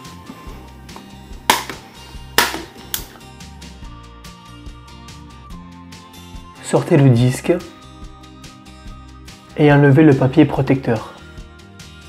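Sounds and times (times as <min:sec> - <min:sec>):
background music: 0:00.0 - 0:12.0
plastic clips snapping loose: 0:02.4 - 0:03.2.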